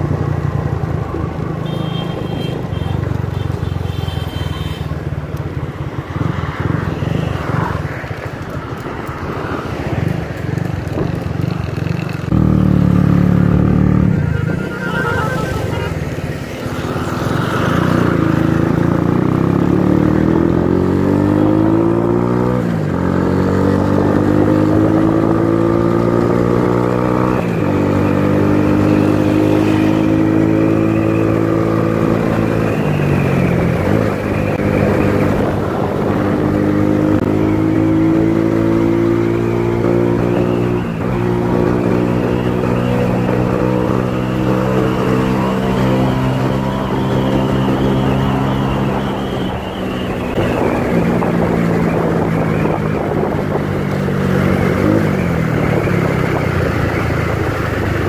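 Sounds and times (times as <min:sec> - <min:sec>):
another motorcycle alongside: 0:00.0 - 0:58.0.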